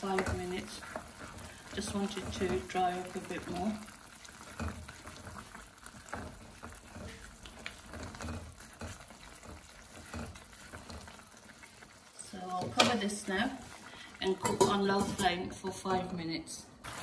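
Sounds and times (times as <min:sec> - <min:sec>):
spatula stirring thick sauce: 0:00.0 - 0:15.0
spatula scraping pot: 0:00.0 - 0:16.2.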